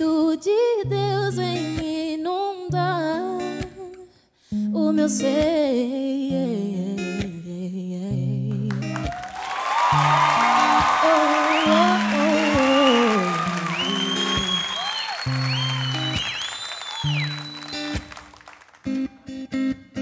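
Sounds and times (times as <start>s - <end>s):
acoustic guitar slow chords: 4.6s - 18.3s
audience applauding and cheering: 8.9s - 19.4s
audience whistling: 9.0s - 19.2s.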